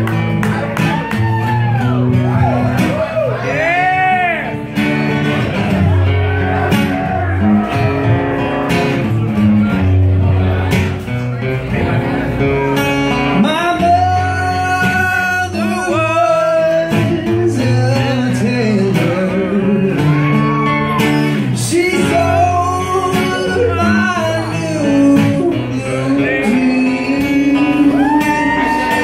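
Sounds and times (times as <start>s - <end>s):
acoustic guitar: 0.0s - 29.0s
man singing into a microphone: 13.3s - 20.8s, 21.4s - 29.0s.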